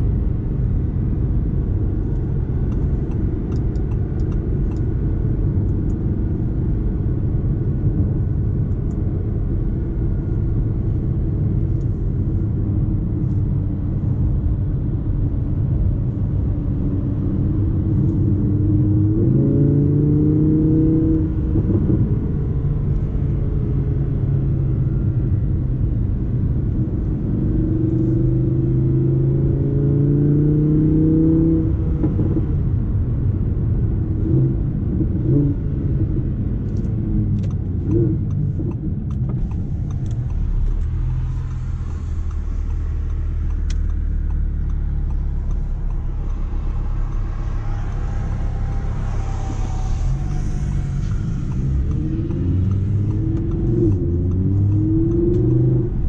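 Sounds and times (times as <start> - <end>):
car engine revving: 15.9 - 33.0, 34.0 - 56.0
tyre and road rumble: 30.8 - 56.0.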